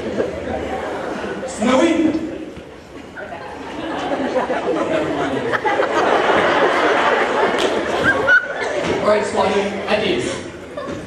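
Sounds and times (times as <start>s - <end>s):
chatter of voices in a hall: 0.0s - 11.0s.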